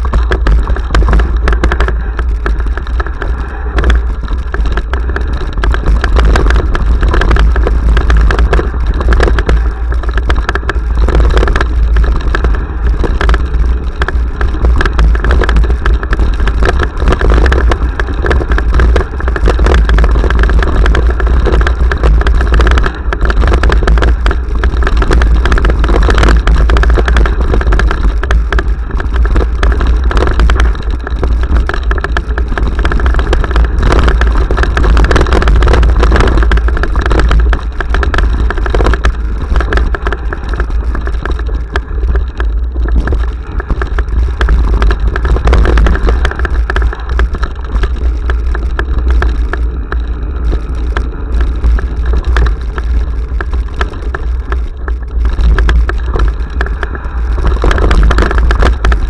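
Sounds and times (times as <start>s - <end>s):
bike rattling knocks: 0.0s - 59.0s
bike rumbling on dirt trail: 0.0s - 59.0s
wind buffeting microphone: 0.0s - 59.0s.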